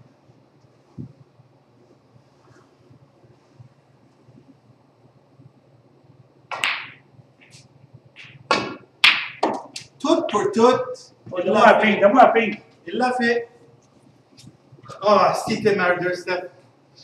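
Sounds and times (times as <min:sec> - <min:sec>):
low room hum: 0:00.0 - 0:17.0
snooker cue striking ball: 0:06.5 - 0:07.0, 0:08.2 - 0:09.9.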